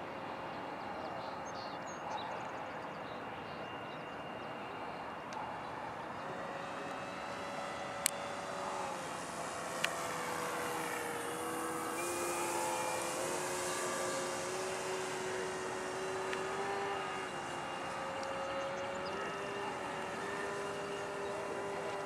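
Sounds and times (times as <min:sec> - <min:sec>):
model plane motor whine: 0:03.7 - 0:22.0.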